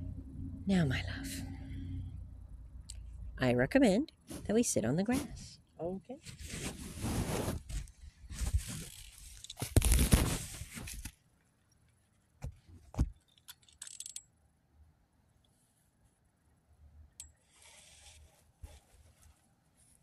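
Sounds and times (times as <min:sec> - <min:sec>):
rustling and scraping: 0:04.2 - 0:05.6, 0:06.2 - 0:11.2, 0:17.4 - 0:20.0.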